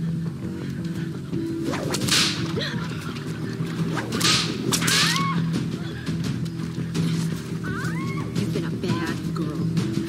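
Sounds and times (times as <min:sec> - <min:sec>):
background music: 0:00.0 - 0:10.0
whip-like swishes: 0:01.6 - 0:02.5.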